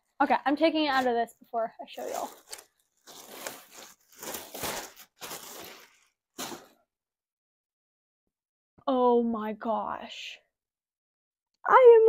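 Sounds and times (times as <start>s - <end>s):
packaging crinkling and rustling: 1.9s - 6.8s.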